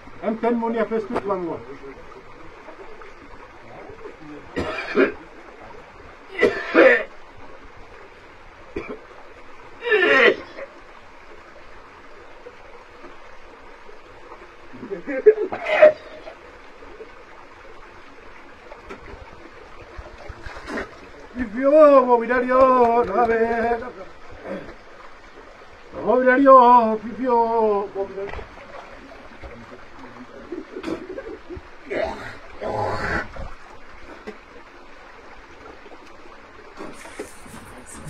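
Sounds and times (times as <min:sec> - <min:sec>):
stream running: 0:00.0 - 0:38.0
man gagging and retching: 0:04.6 - 0:05.2, 0:06.3 - 0:07.1, 0:09.8 - 0:10.7, 0:15.5 - 0:16.4, 0:24.4 - 0:24.8, 0:30.7 - 0:33.5, 0:36.8 - 0:38.0.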